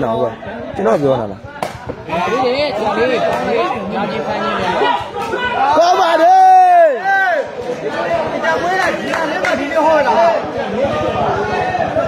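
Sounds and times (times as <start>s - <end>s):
spectators chattering: 0.0s - 12.0s.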